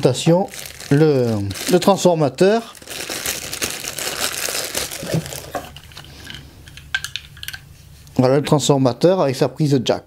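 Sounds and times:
plastic bag crinkling: 0.0s - 6.1s.

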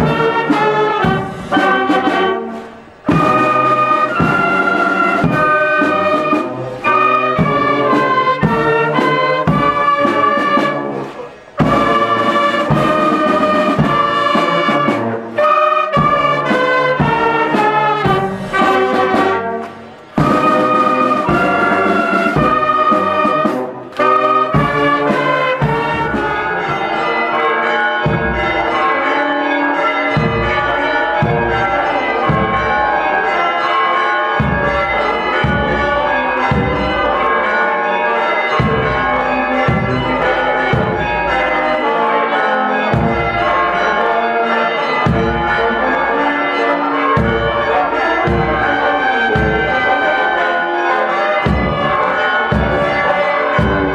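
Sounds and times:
drum beats: 0.0s - 29.2s, 30.0s - 33.3s, 34.4s - 37.6s, 38.6s - 42.0s, 42.8s - 44.1s, 45.0s - 46.2s, 47.2s - 50.2s, 51.4s - 53.9s
church bells ringing: 0.0s - 53.9s
marching band playing: 0.0s - 53.9s.

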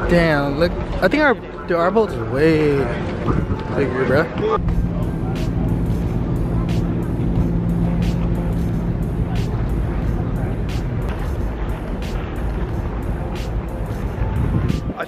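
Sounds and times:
low rumbling noise: 2.2s - 15.0s
music with a steady beat: 4.6s - 15.0s.

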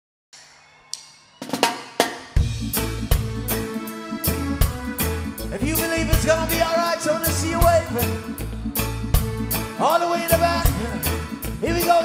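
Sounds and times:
reggae band playing: 1.3s - 12.0s
snare and drum hits: 1.5s - 2.5s.

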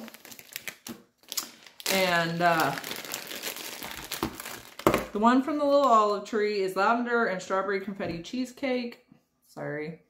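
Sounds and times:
sharp packaging clicks: 0.0s - 5.1s
packaging crinkling: 0.0s - 5.2s.

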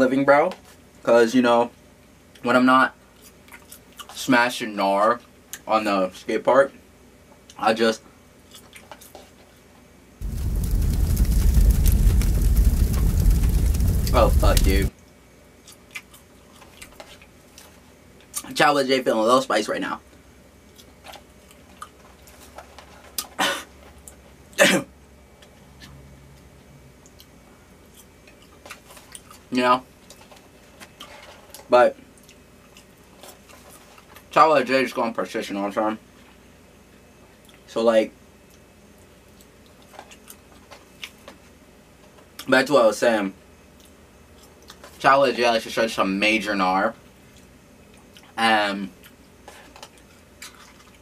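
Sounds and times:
chewing fries: 3.1s - 4.3s, 8.4s - 9.6s, 15.6s - 18.6s, 20.6s - 24.6s, 25.4s - 34.4s, 37.3s - 37.7s, 38.4s - 42.5s, 43.7s - 45.1s, 47.0s - 51.0s
fire rushing and crackling: 10.2s - 14.9s.

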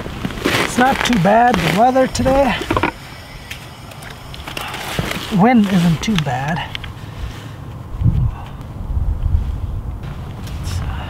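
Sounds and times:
wind noise on microphone: 7.1s - 11.0s.

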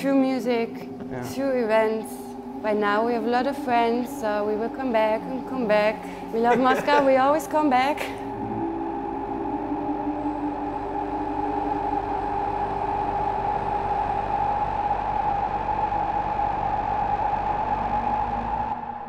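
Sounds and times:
synthesizer drone: 0.0s - 19.0s.

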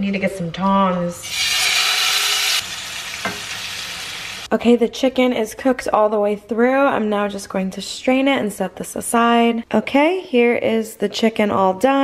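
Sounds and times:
chicken sizzling in frying pan: 1.3s - 4.5s.

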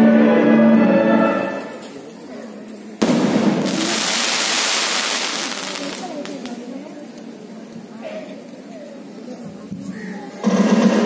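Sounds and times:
loud bang with rushing roar: 3.0s - 4.3s.

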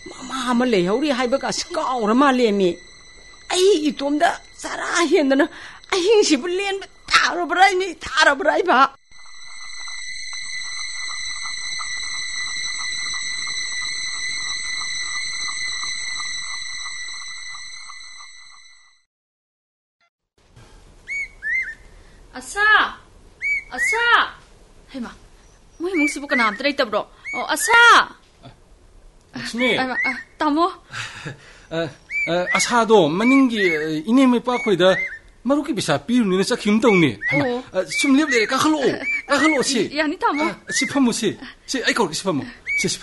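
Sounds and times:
high-pitched fluttering tones: 0.0s - 19.0s, 25.8s - 28.1s, 32.2s - 35.2s, 36.4s - 41.3s.

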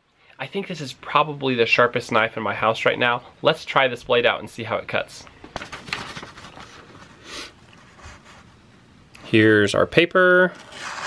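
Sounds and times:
paper rustling: 5.4s - 8.6s.

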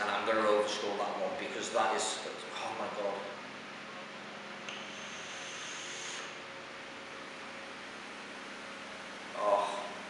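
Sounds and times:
faint hiss of air: 4.7s - 6.5s.

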